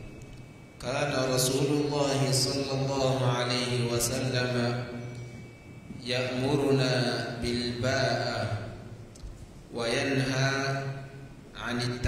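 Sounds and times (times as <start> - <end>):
man chanting: 0.8 - 4.9.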